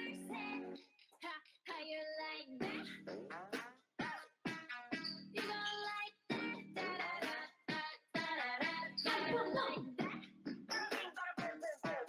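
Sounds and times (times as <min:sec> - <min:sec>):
pop dance track with singing: 0:00.0 - 0:12.0.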